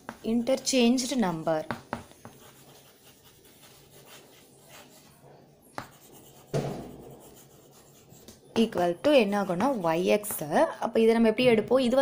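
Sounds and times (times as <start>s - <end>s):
chalk tap: 0.0s - 0.4s, 1.6s - 4.9s, 5.7s - 10.5s
chalk scratching on blackboard: 0.0s - 10.6s.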